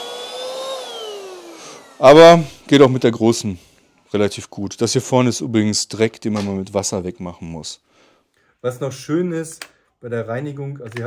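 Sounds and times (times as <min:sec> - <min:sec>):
vacuum motor whining: 0:00.0 - 0:02.7.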